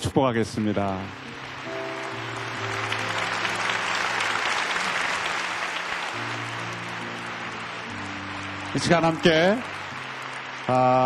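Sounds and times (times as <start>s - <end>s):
congregation applauding: 0.0s - 11.0s
sustained background music chords: 0.0s - 11.0s.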